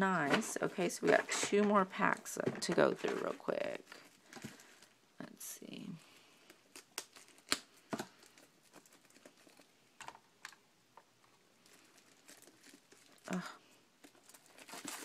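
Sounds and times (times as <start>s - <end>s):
cellophane crinkling: 6.1s - 10.6s, 11.2s - 15.0s.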